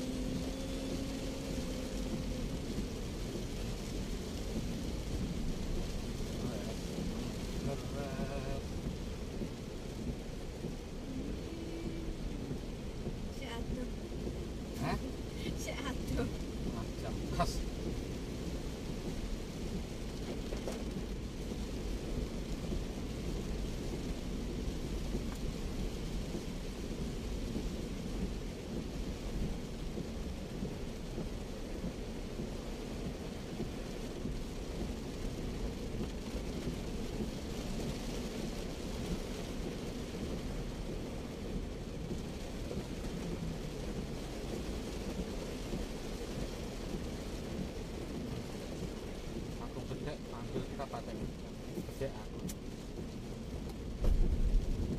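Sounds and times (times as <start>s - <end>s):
rain hissing on car body: 0.0s - 54.9s
road and engine drone: 0.0s - 54.9s.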